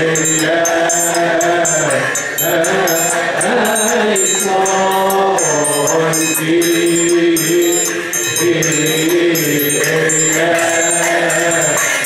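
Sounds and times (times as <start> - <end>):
men chanting a hymn: 0.0 - 12.0
metal triangle ringing: 0.0 - 12.0.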